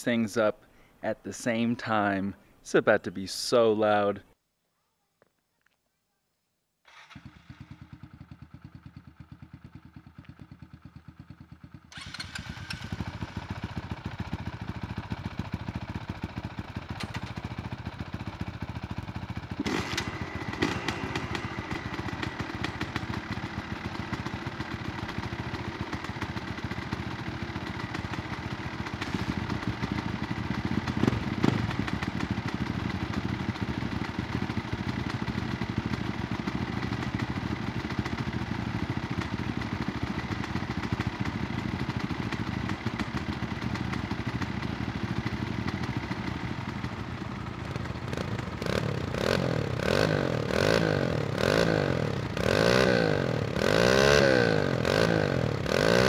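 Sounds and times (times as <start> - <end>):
dirt bike engines running: 7.2 - 56.0.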